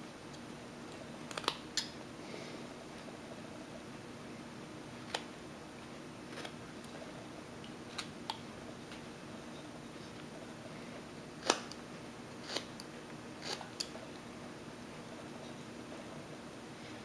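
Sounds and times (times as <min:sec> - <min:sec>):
faint steady hum: 0:00.0 - 0:17.0
knife carving wood: 0:12.4 - 0:12.8, 0:13.4 - 0:13.9.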